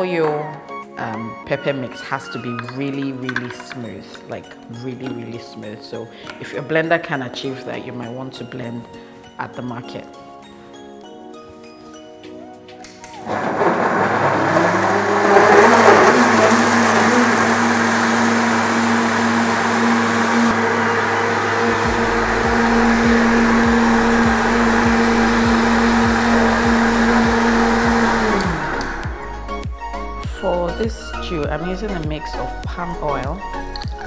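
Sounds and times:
blender motor running: 13.2 - 29.6.

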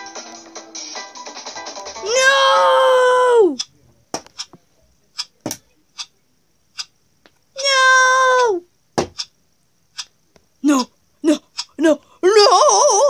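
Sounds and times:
high-pitched wordless cries: 2.0 - 3.7, 7.6 - 8.7, 10.6 - 13.0.

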